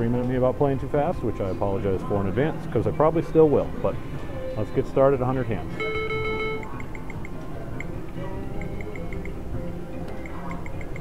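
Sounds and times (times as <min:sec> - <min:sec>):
casino background music: 0:00.0 - 0:11.0
video poker machine beeping: 0:04.5 - 0:09.4, 0:10.2 - 0:11.0
casino din: 0:05.7 - 0:09.4.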